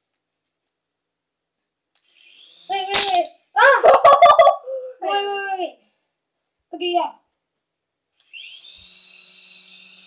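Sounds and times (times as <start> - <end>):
child's wordless vocal sounds: 4.6 - 5.9.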